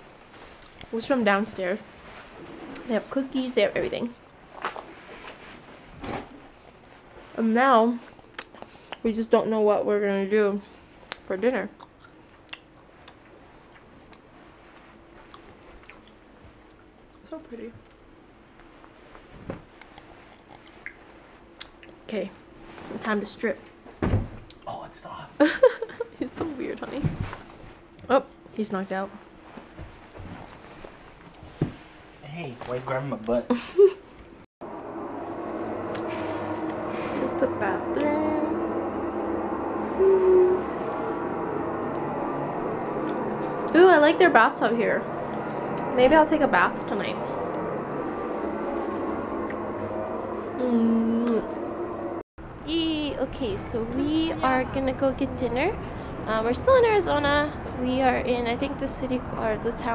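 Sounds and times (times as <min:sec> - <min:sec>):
ventilation fan humming: 0:00.0 - 0:59.9
faint low hum: 0:32.2 - 0:59.9
brief pitched tone: 0:34.7 - 0:52.2.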